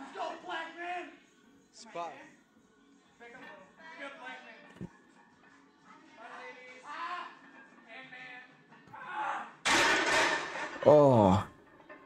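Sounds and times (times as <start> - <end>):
man exclaiming: 10.8 - 11.5.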